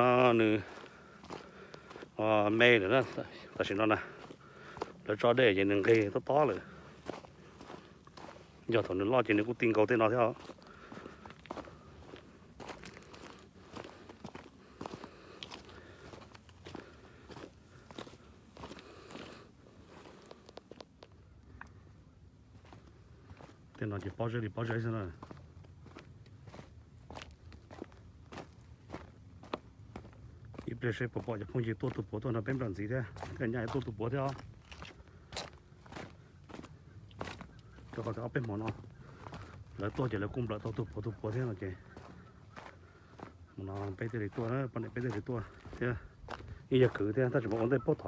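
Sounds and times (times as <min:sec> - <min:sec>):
man talking: 0:00.0 - 0:00.8, 0:02.2 - 0:04.3, 0:05.0 - 0:06.8, 0:08.6 - 0:10.5, 0:23.8 - 0:25.3, 0:30.6 - 0:34.5, 0:37.9 - 0:38.8, 0:39.8 - 0:42.1, 0:43.6 - 0:46.1, 0:46.7 - 0:48.0
footsteps on gravel: 0:00.0 - 0:48.0.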